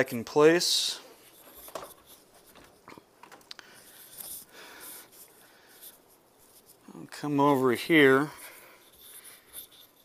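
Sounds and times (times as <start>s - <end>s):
soft handling rustling: 0.0s - 10.0s.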